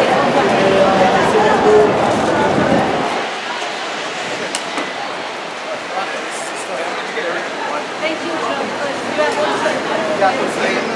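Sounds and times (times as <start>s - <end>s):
crowd and traffic bustle: 0.0s - 10.9s.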